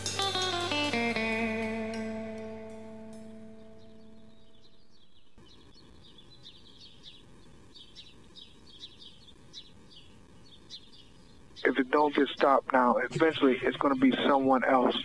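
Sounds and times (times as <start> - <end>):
guitar chord ringing: 0.0 - 4.9
faint birds chirping: 1.9 - 15.0.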